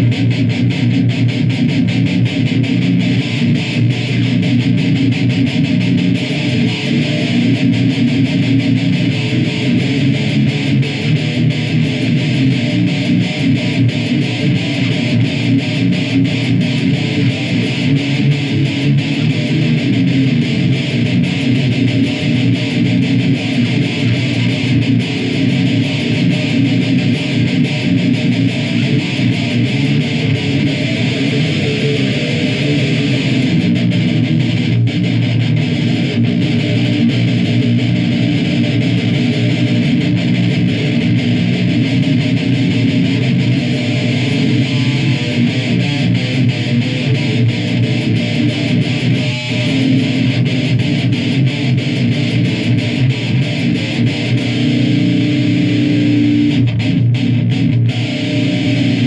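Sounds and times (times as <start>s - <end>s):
distorted electric guitar riff: 0.0s - 59.0s.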